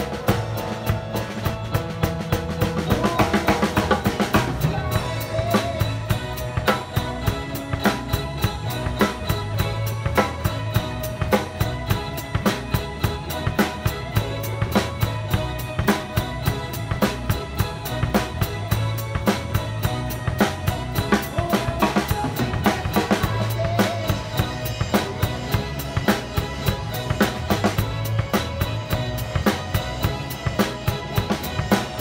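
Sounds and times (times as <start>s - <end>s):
drum kit beat: 0.0s - 32.0s
sustained low bass notes: 0.0s - 32.0s.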